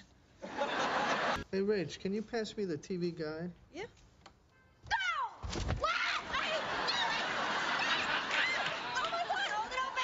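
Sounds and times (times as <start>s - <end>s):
startled shouts: 4.9s - 10.0s.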